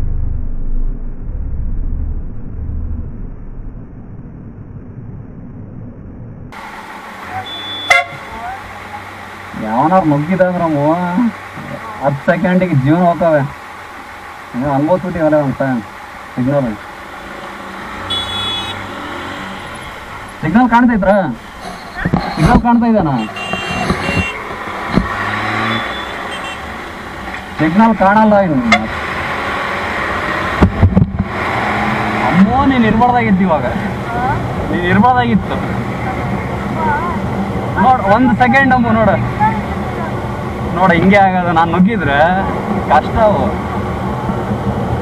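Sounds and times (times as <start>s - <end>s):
hum of vehicles: 0.0s - 45.0s
muffled traffic rumble: 0.0s - 45.0s
vehicle horn toot: 7.3s - 8.6s, 18.0s - 20.3s, 21.6s - 24.5s, 25.1s - 26.9s
short high-pitched beeps: 25.6s - 26.6s.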